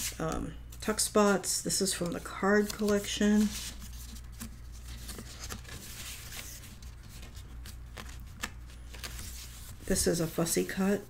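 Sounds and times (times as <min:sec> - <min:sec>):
low steady hum: 0:00.0 - 0:11.0
paper pages rustling: 0:00.0 - 0:11.0.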